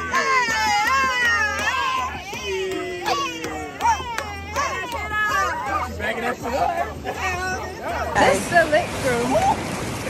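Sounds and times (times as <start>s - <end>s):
voices shouting and hollering: 0.0s - 9.7s
music with deep bass: 0.0s - 10.0s.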